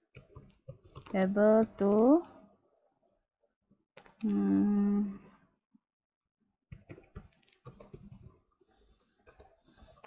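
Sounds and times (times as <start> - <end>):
computer keyboard typing: 0.1 - 2.3, 6.7 - 8.4, 9.2 - 10.0.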